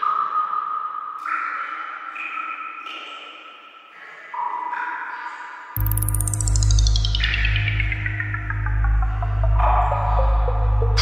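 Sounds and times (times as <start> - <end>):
ping-like synthesizer tones: 5.8 - 11.0.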